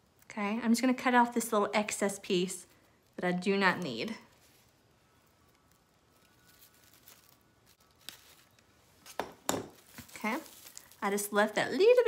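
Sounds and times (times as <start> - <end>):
faint plastic rustling: 0.0 - 12.0.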